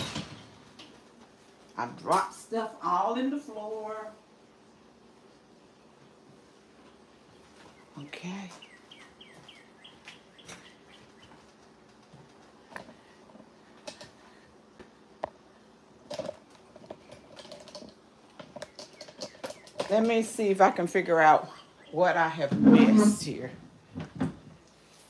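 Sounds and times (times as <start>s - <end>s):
clicks and knocks of handling: 16.0s - 20.2s.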